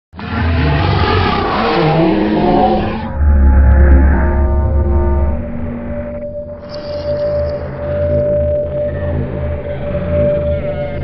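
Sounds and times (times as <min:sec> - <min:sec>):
rough intro sound effect: 0:00.2 - 0:08.7
deep rumble: 0:00.2 - 0:11.0.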